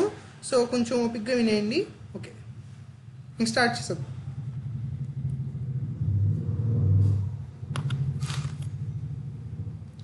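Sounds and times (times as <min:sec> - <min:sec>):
low humming rumble: 0:00.0 - 0:10.0.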